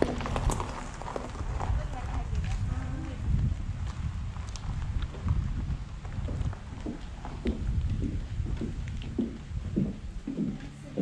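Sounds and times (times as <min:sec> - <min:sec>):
footsteps on paved path: 0:00.0 - 0:11.0
wind rumble on microphone: 0:00.0 - 0:11.0.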